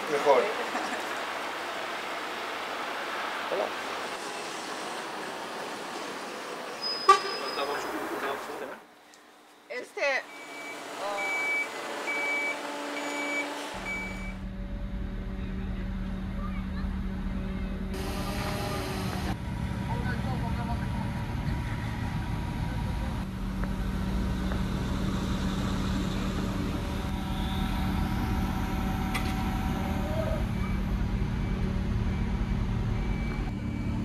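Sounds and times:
diesel engine under load: 10.2s - 34.0s
reversing alarm beeps: 10.3s - 14.4s, 30.5s - 34.0s.

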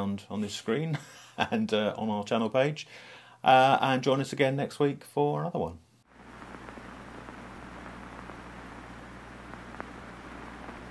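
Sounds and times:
faint crackles: 6.1s - 10.9s
low hum: 6.1s - 10.9s
steady hiss: 6.1s - 10.9s.

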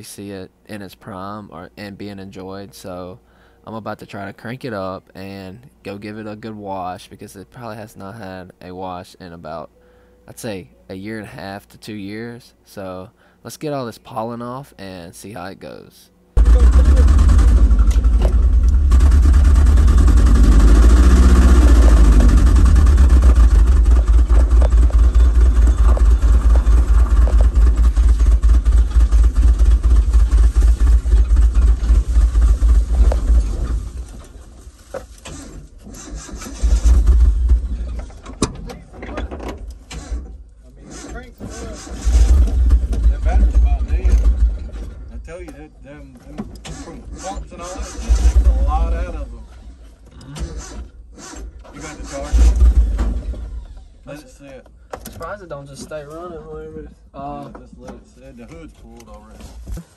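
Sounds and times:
engine sputtering bursts: 16.4s - 34.5s, 35.2s - 37.9s, 39.9s - 45.0s, 46.7s - 54.1s
pickup truck engine running: 16.4s - 38.2s.

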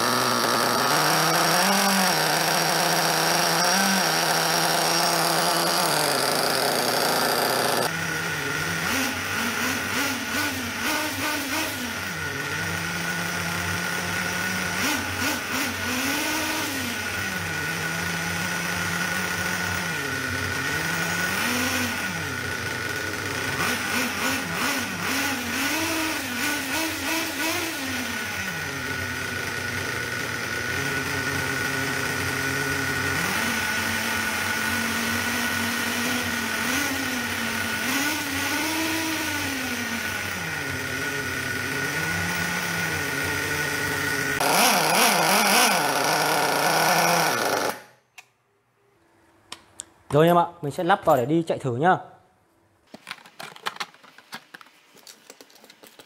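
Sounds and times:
model engine revving: 0.0s - 48.0s.

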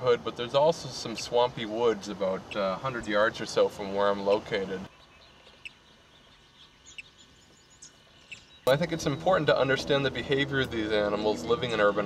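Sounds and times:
faint bird chirps: 4.8s - 9.7s.

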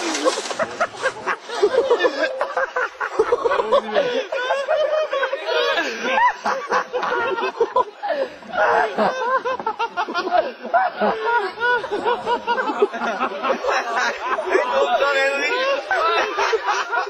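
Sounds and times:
people speaking: 0.0s - 9.6s, 10.2s - 17.0s
people laughing together: 0.0s - 17.0s.

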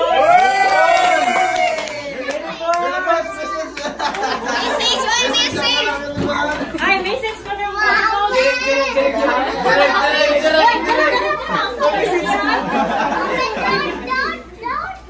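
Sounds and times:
children and adults chattering: 1.9s - 15.0s.

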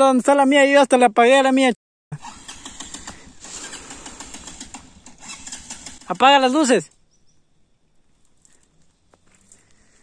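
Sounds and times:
distant motorcycle clattering: 2.5s - 6.6s.

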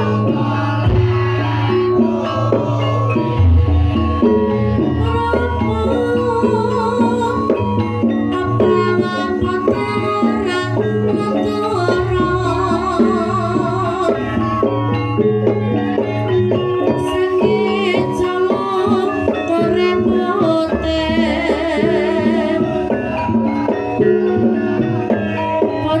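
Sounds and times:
hand drum beat: 0.0s - 26.0s
tuned metal percussion: 0.0s - 26.0s.

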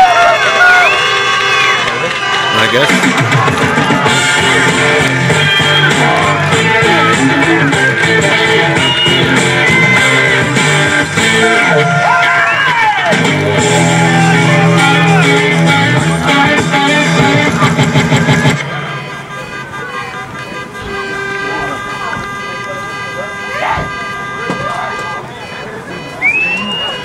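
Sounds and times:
crowd voices: 0.0s - 27.0s
steady horn tone: 0.0s - 27.0s
rock music with guitar: 2.9s - 18.6s
short rising whistle: 5.3s - 6.2s, 8.8s - 9.3s, 26.2s - 27.0s.

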